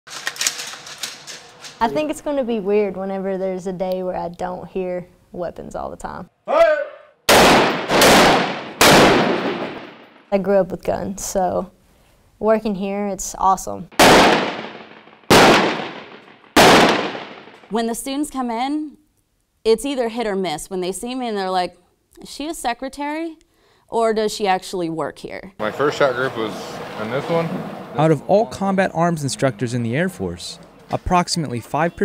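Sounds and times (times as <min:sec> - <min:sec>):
metallic clicks of rifle action: 0:00.1 - 0:01.8
person speaking: 0:01.8 - 0:02.9
gunshots with echo: 0:07.3 - 0:10.2, 0:13.9 - 0:17.6.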